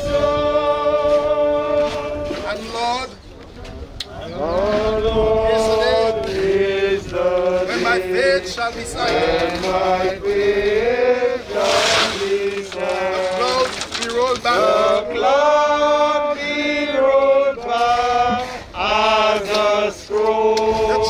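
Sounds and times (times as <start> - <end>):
group singing a hymn unaccompanied: 0.0 - 3.0, 4.2 - 21.0.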